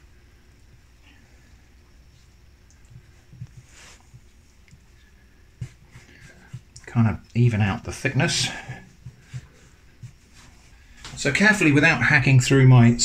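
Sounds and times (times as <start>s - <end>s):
hands rolling dough: 0.0s - 13.0s.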